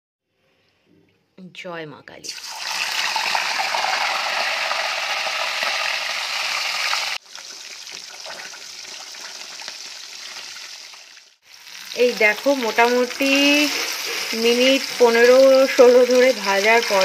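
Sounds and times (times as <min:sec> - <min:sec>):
fish sizzling in hot oil: 0:02.3 - 0:17.0.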